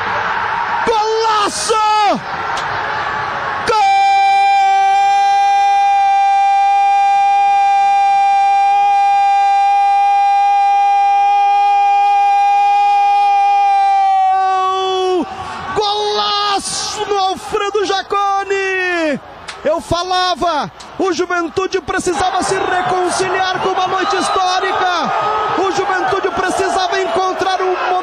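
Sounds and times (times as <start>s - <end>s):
radio narrator shouting goal: 0.8s - 2.2s, 3.6s - 28.0s.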